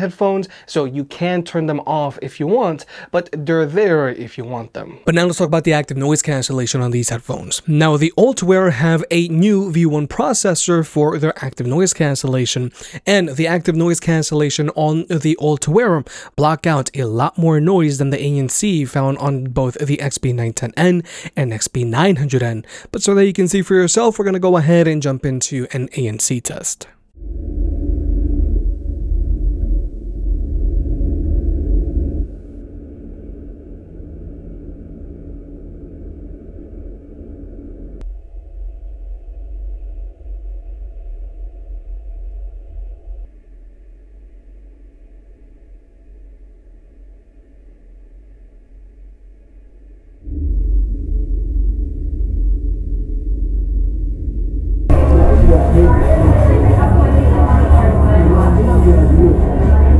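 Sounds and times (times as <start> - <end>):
road noise low rumble: 27.1 - 44.2, 50.0 - 59.9.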